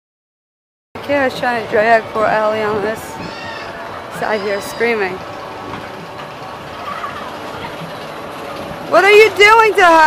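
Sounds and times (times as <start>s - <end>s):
amusement park rumble and hiss: 1.0s - 10.0s.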